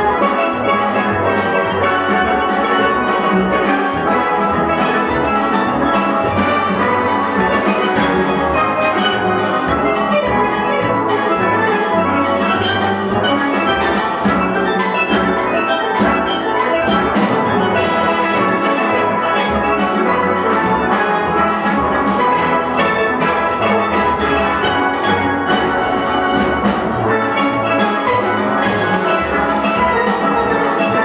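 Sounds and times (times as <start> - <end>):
drum kit: 0.0 - 31.0
steel orchestra playing: 0.0 - 31.0.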